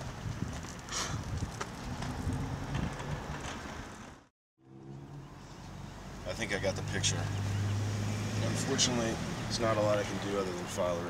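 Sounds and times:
wind rumble: 0:00.0 - 0:04.2
distant traffic: 0:00.6 - 0:11.0.

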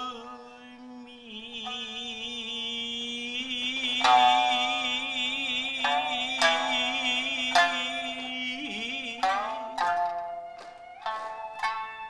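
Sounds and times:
person singing long vibrato note: 0:00.0 - 0:10.4
shamisen string plucked: 0:01.4 - 0:12.0.

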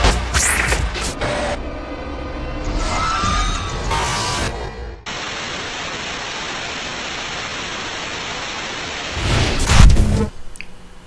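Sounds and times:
television static hiss: 0:05.1 - 0:11.0.

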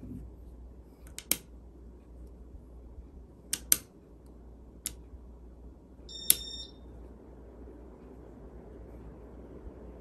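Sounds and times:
ceiling fan humming: 0:00.0 - 0:10.0
switch clicks: 0:03.5 - 0:03.9.

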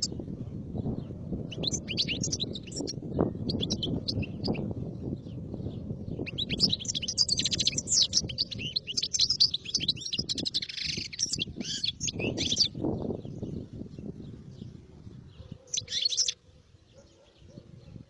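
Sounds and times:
goldfinch twittering song: 0:01.5 - 0:14.1, 0:15.6 - 0:16.4.

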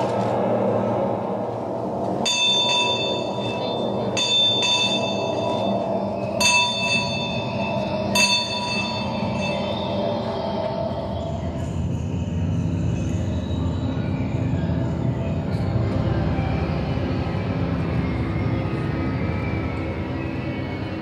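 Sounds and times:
steady low drone: 0:00.0 - 0:21.0.

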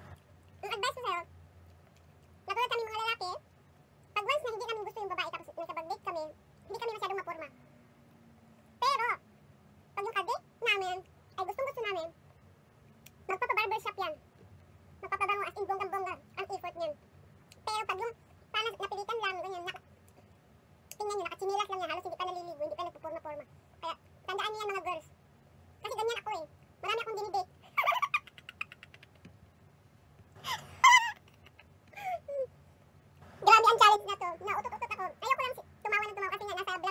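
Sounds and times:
people talking: 0:00.0 - 0:01.3, 0:02.5 - 0:03.4, 0:04.2 - 0:07.6, 0:08.8 - 0:09.2, 0:10.0 - 0:12.2, 0:13.3 - 0:14.2, 0:15.0 - 0:17.0, 0:17.6 - 0:19.8, 0:20.9 - 0:25.1, 0:25.8 - 0:29.0, 0:32.0 - 0:32.5, 0:33.2 - 0:36.9
woman laughing: 0:30.4 - 0:32.5.

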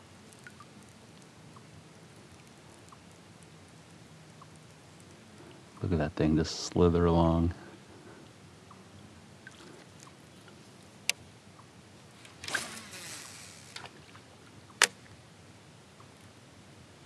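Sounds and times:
faint steady background: 0:00.0 - 0:17.0
rustling splashy noise: 0:12.2 - 0:15.0.

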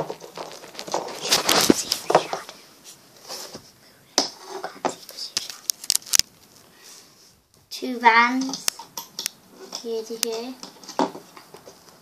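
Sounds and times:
rubber bands clicking and snapping: 0:05.4 - 0:06.3.

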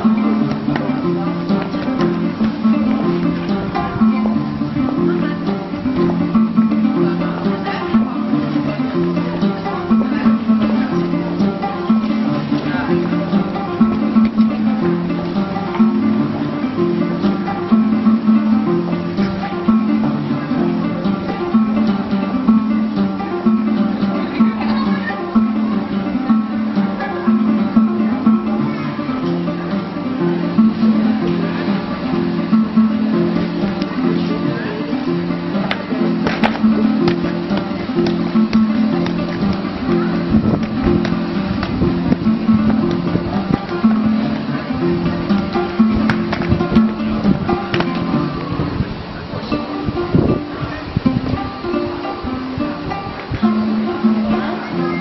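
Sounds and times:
plucked acoustic guitar music: 0:00.0 - 0:55.0.

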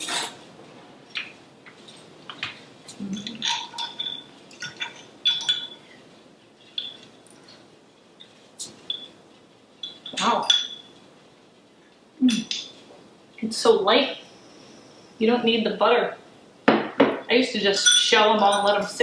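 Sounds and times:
cutlery clinking on ceramic bowl: 0:03.2 - 0:05.9, 0:06.7 - 0:07.1, 0:08.8 - 0:09.1, 0:09.8 - 0:11.0, 0:17.8 - 0:18.8.

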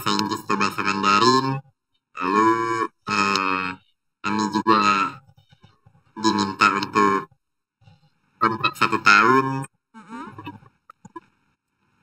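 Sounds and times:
distorted man's voice: 0:00.0 - 0:05.6, 0:06.2 - 0:07.3, 0:08.4 - 0:09.7.

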